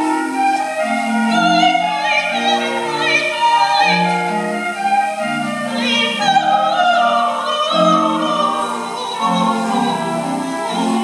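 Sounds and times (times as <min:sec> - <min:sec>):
choir singing through speakers: 0:01.1 - 0:04.6, 0:05.6 - 0:11.0.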